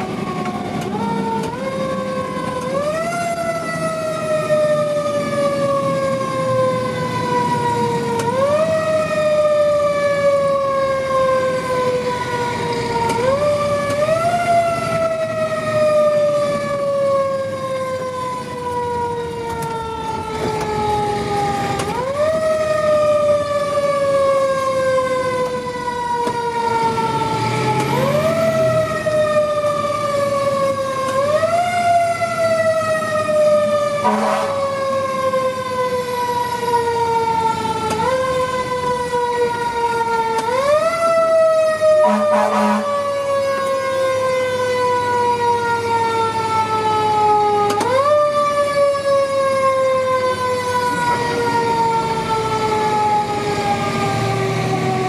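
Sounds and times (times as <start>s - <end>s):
siren winding up and down: 0.0s - 55.0s
short horn blasts: 34.0s - 34.6s, 42.0s - 42.9s.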